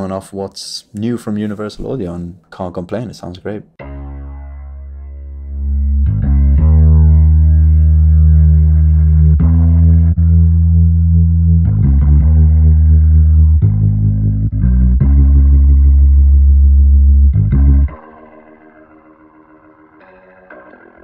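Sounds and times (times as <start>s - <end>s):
electric bass guitar through rotary speaker: 3.8s - 21.0s.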